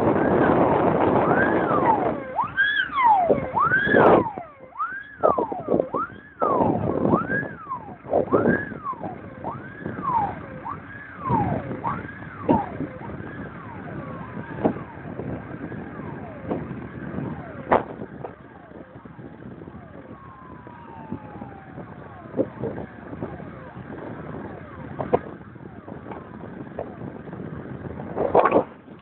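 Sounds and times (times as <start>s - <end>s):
distant fire engine sirens: 0.0s - 29.0s.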